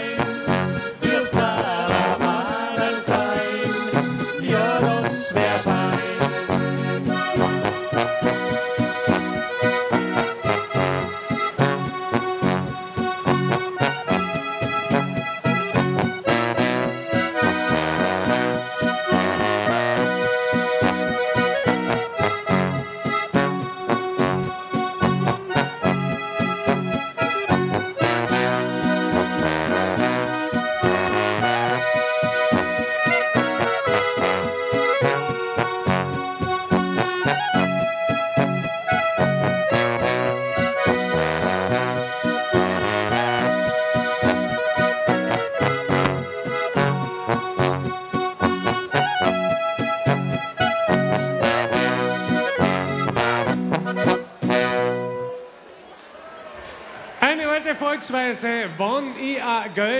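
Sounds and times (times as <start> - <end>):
button accordion: 0.0 - 55.6
clarinet: 0.0 - 55.6
guitar: 0.0 - 55.7.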